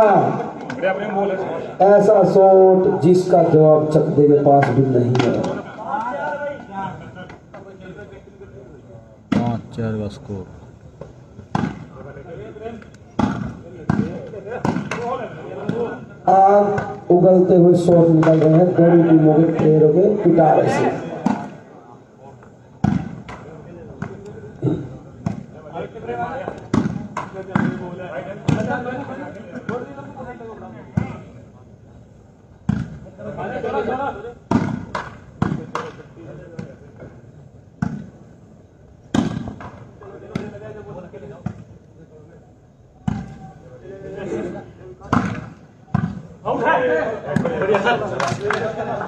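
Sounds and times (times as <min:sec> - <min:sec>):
volleyball smacks: 0:13.2 - 0:15.8, 0:22.8 - 0:23.4, 0:34.5 - 0:36.0, 0:39.1 - 0:40.6, 0:45.1 - 0:46.2.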